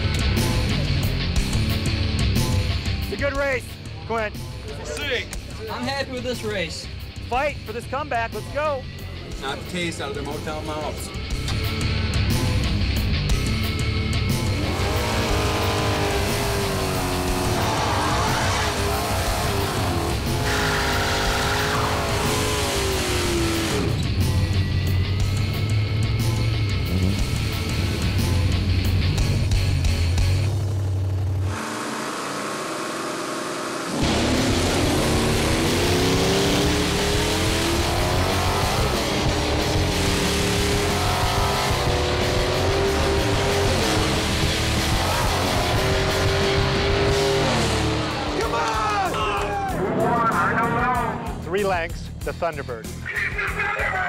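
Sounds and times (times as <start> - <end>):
rock music: 0.0 - 32.7, 33.8 - 54.0
drag car engines accelerating: 0.0 - 53.2.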